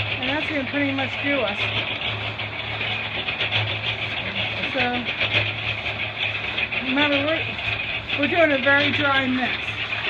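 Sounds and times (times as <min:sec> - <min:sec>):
machine engine running: 0:00.0 - 0:10.0.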